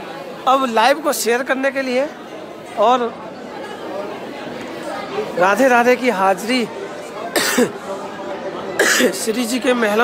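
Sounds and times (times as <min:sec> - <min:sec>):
crowd babble in a large hall: 0:00.0 - 0:10.0.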